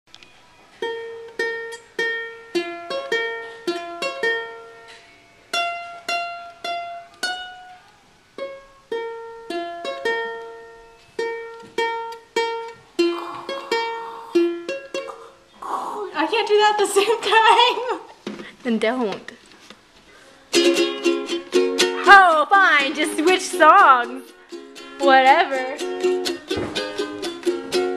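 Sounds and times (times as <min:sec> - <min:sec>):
ukulele plucked melody: 0:00.2 - 0:15.5, 0:20.5 - 0:27.9.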